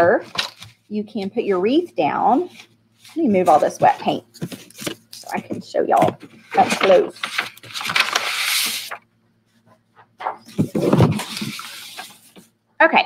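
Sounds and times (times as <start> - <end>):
paper crumpling and rustling: 0.2 - 0.9, 2.5 - 9.0, 10.2 - 12.5.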